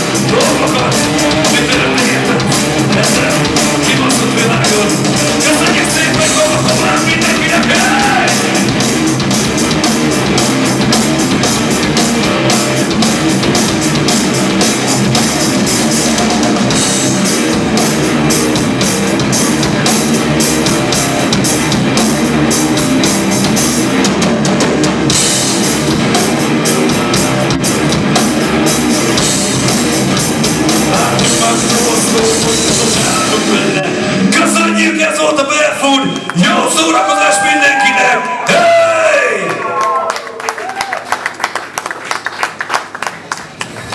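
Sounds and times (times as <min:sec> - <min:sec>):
electric guitar: 0:00.0 - 0:34.3
drum kit with cymbals: 0:00.0 - 0:34.6
bass guitar: 0:00.0 - 0:40.0.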